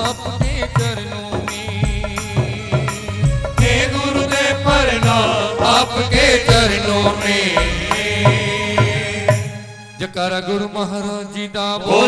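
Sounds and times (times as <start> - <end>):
drum strokes: 0.0 - 9.8
keyboard: 0.0 - 12.0
men singing into microphones: 0.0 - 12.0.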